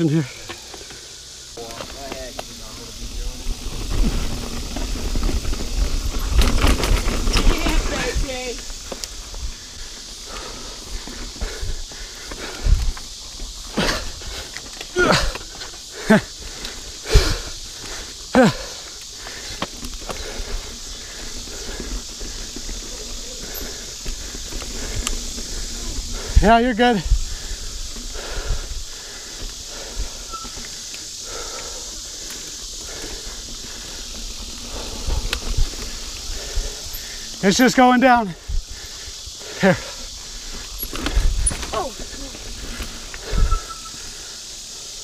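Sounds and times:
bike tire rumble: 0.0 - 45.0
wind: 0.0 - 45.0
bike knocks and rattles over bumps: 1.6 - 37.4, 38.5 - 44.0.

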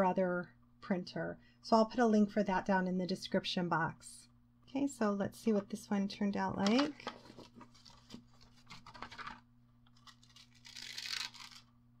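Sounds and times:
foil and paper crinkling: 7.1 - 11.6.

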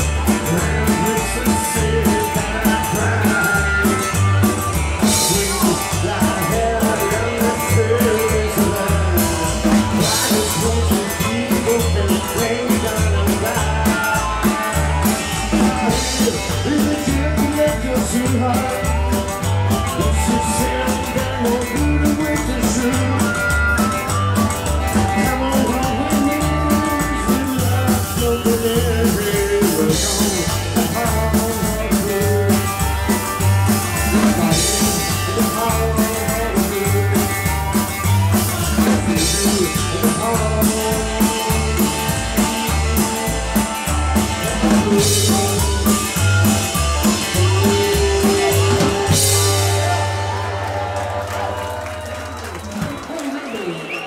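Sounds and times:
harmonica: 0.0 - 50.3
upright double bass: 0.0 - 52.7
crowd cheering: 0.0 - 54.0
drums: 0.0 - 54.0
guitars: 0.0 - 54.0.

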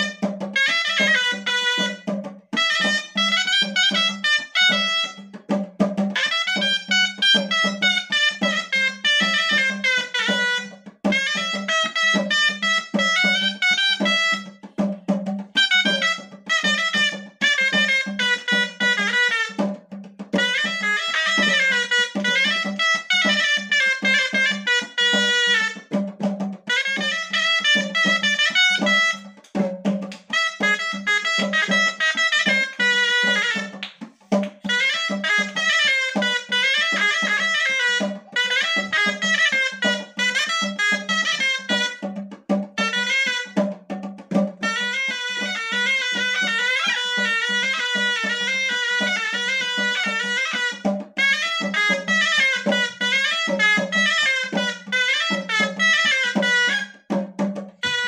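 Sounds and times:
shawm playing fast melody: 0.0 - 58.0.

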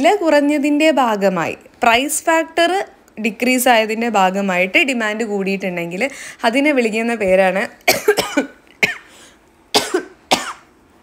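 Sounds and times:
woman coughing: 7.9 - 9.1, 9.7 - 10.7.

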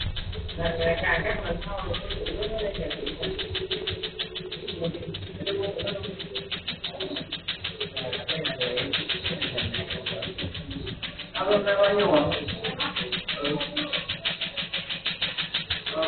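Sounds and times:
laser machine rapid clicks: 0.0 - 16.0.

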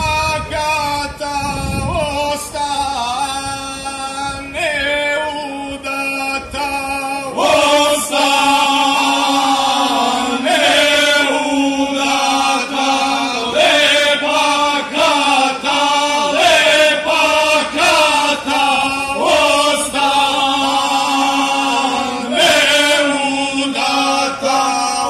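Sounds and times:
male vocal group singing: 0.0 - 25.0.

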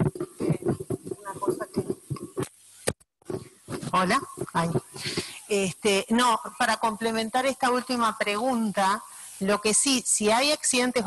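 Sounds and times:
indistinct voices: 0.0 - 2.5, 3.3 - 5.7.

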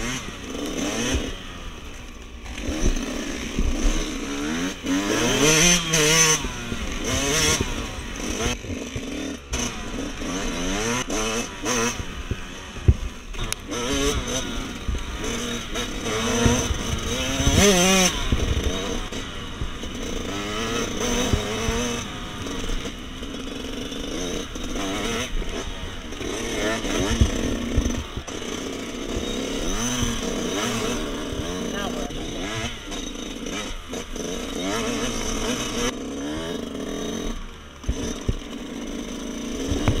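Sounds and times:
dirt bike engine revving: 0.0 - 40.0.

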